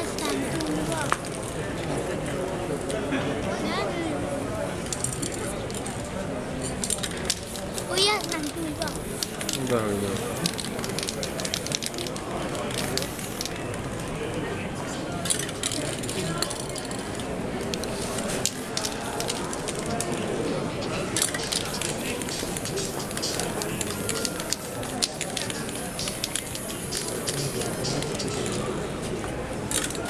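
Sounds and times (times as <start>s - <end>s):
spray paint can hissing: 0.0s - 1.1s, 6.8s - 13.7s, 15.2s - 20.2s, 21.1s - 28.8s.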